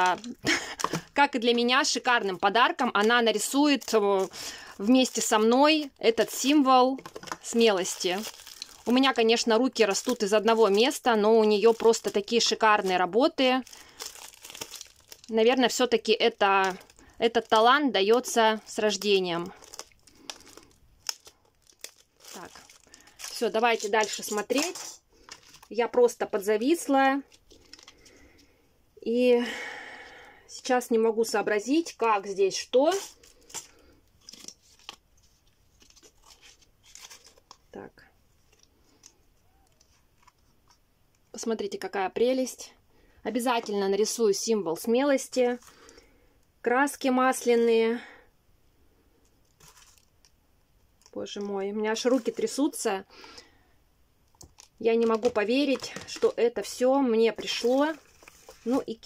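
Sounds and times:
plastic packet crinkling: 0.0s - 26.0s, 27.3s - 28.2s, 32.8s - 37.7s, 49.4s - 50.3s, 51.0s - 52.8s, 54.3s - 59.0s.

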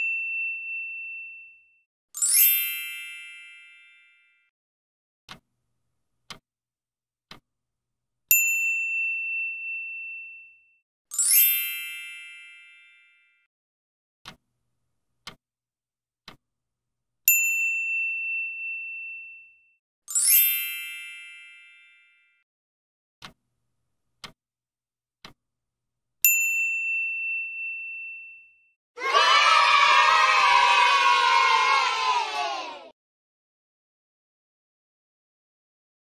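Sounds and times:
bright chime: 0.0s - 4.4s, 8.4s - 13.2s, 17.4s - 22.2s
clock ticking: 14.2s - 14.5s, 15.2s - 15.4s, 23.2s - 23.4s, 24.1s - 24.4s
crowd cheering: 29.0s - 32.9s.

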